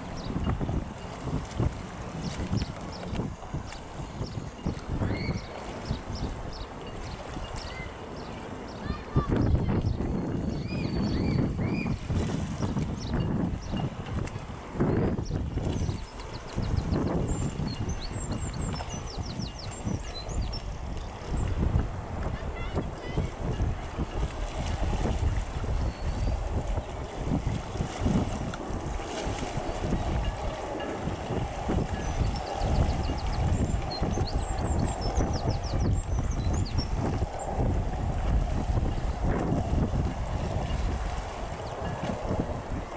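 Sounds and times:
wind buffeting microphone: 0:00.0 - 0:42.9.

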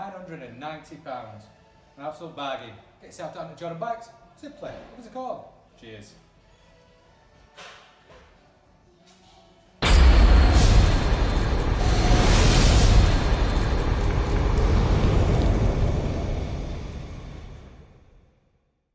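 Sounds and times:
fiery roar: 0:09.8 - 0:18.2
explosion boom: 0:09.8 - 0:18.3.

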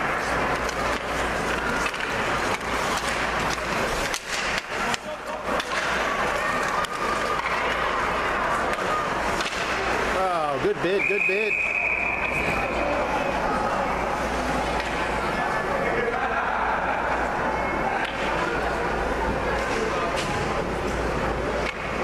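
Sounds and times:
sticks clicking on puck: 0:00.0 - 0:08.0, 0:08.6 - 0:09.9
skate blades scraping ice: 0:00.0 - 0:10.1
arena hubbub: 0:00.0 - 0:22.0.

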